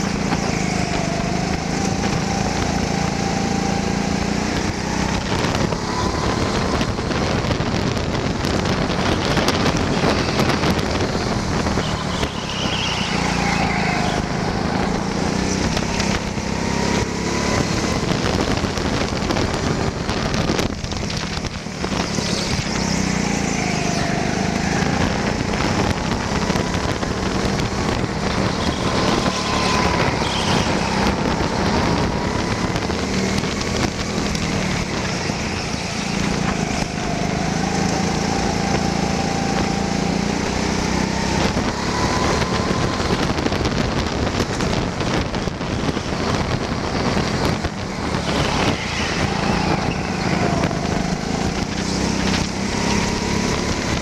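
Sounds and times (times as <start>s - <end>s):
go-kart engine: 0.0s - 54.0s
wind noise: 0.0s - 54.0s.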